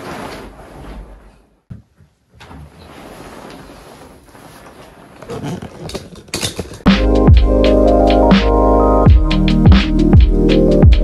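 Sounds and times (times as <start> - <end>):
bedding rustling: 0.0 - 6.8
electronic music with steady beat: 6.9 - 11.0.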